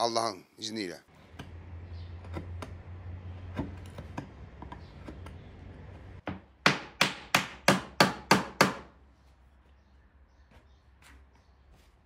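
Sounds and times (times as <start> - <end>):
hammer striking wooden panel: 6.2 - 8.9.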